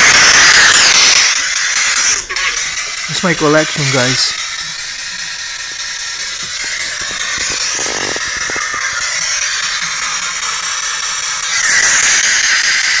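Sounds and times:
broken broadcast fragments: 0:00.0 - 0:13.0
radio static hiss: 0:03.0 - 0:09.8.

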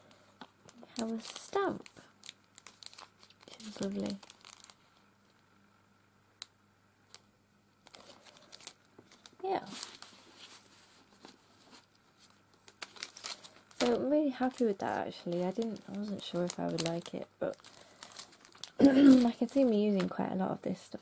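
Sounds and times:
plastic packets crinkling: 0:00.7 - 0:04.9, 0:07.8 - 0:20.2.

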